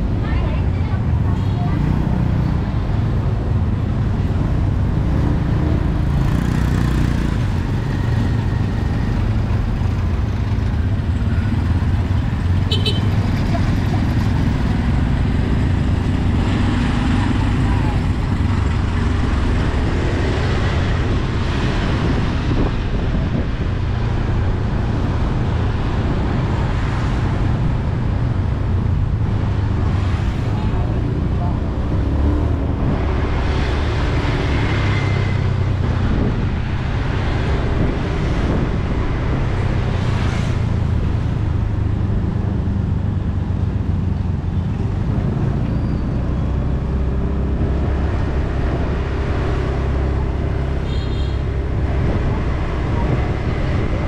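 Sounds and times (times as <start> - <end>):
engine rumble: 0.0 - 54.0
road and wind noise: 0.0 - 54.0.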